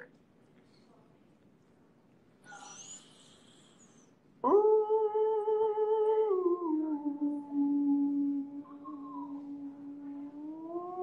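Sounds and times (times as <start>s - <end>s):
person humming: 6.1s - 11.0s.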